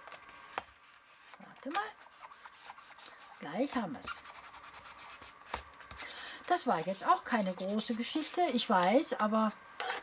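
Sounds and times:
ink applicator rubbing on paper: 0:02.0 - 0:09.2.

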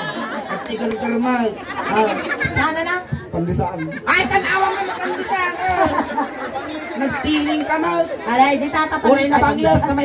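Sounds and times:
background chatter: 0:00.0 - 0:10.0
people talking into microphones: 0:00.0 - 0:10.0.

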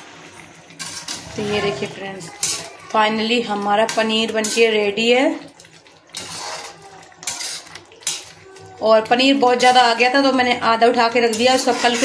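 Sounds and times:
metal ladle scraping a pan: 0:00.1 - 0:08.4, 0:09.2 - 0:12.0.

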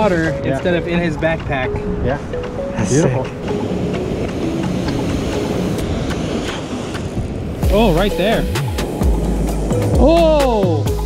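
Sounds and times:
ocean surf washing over sand: 0:02.4 - 0:09.6.

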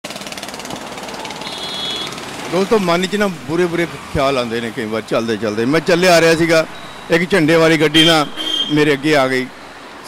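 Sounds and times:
motor with rapid rattle: 0:00.1 - 0:02.5
brief high steady tone: 0:01.2 - 0:02.1.

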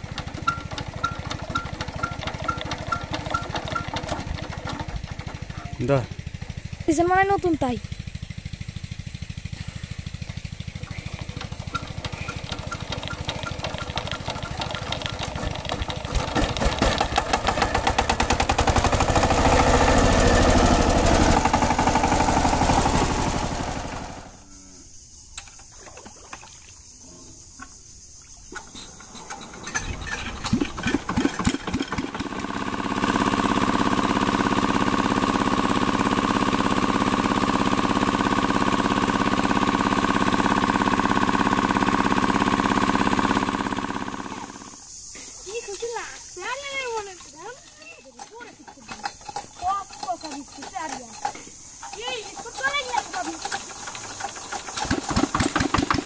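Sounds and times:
diesel engine hand-cranked and firing: 0:00.0 - 0:24.4, 0:28.5 - 0:45.6, 0:46.3 - 0:56.0
tractor diesel engine running: 0:00.0 - 0:24.4, 0:28.6 - 0:56.0
pumping water: 0:09.3 - 0:23.9, 0:25.5 - 0:26.7, 0:28.5 - 0:56.0.

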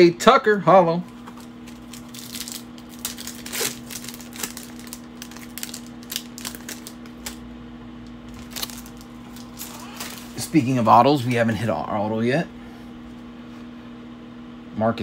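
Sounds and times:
steady low hum: 0:00.0 - 0:15.0
cards clicking and rustling: 0:01.1 - 0:07.4, 0:08.3 - 0:10.6
foil pack tearing and crinkling: 0:01.2 - 0:07.4, 0:08.2 - 0:11.4.

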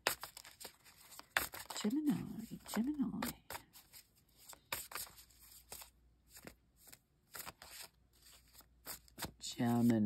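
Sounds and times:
cards being shuffled: 0:00.0 - 0:10.0.

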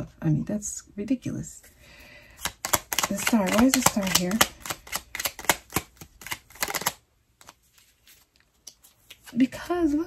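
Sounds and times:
cards shuffled by hand: 0:02.3 - 0:10.0.

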